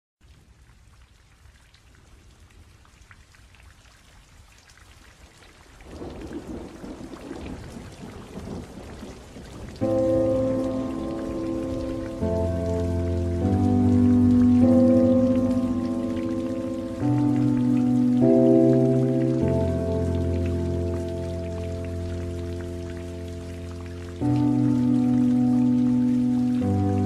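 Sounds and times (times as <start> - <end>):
rain falling: 0.2 - 27.0
thunder rumble: 5.9 - 26.0
electronic music chords: 9.8 - 27.0.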